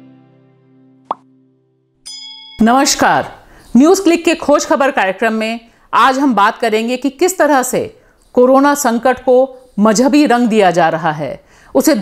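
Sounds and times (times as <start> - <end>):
guitar-like intro music: 0.0 - 2.1.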